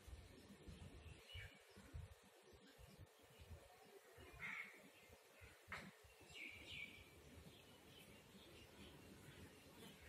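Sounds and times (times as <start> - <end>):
faint bird calls: 3.7 - 6.8.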